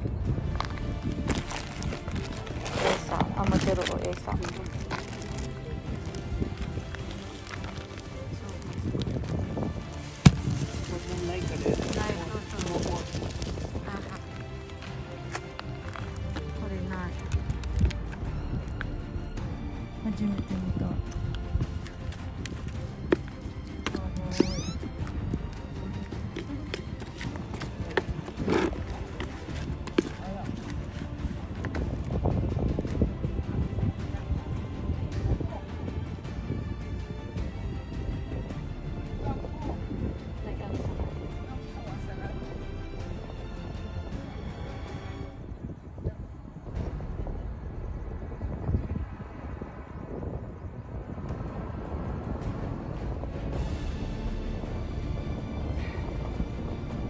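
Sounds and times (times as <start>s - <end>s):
low rumble: 0.0s - 57.0s
wind buffeting microphone: 0.0s - 57.0s.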